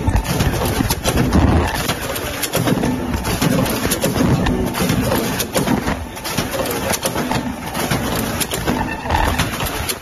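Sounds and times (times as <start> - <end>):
packing machine running: 0.0 - 10.0.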